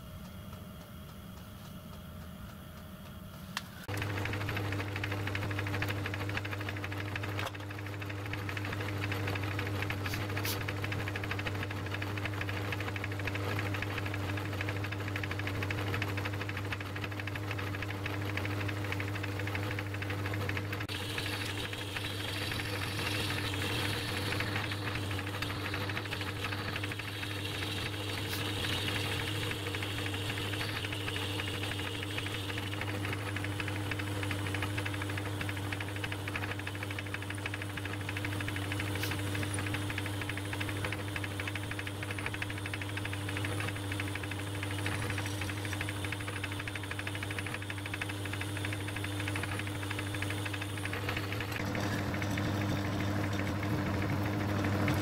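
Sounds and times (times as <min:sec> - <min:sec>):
metal lathe humming: 0:18.7 - 0:55.0.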